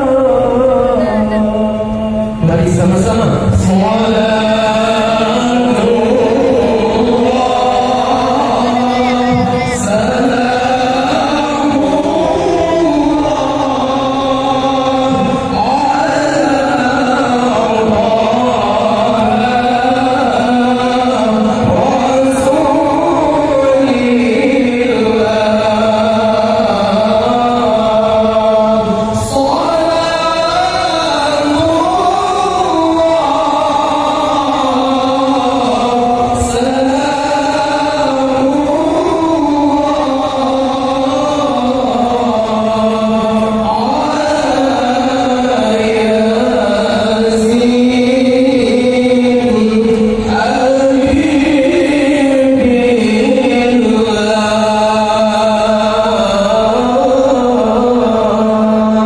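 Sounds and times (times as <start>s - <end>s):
voices chanting devotional praise: 0.0s - 59.0s.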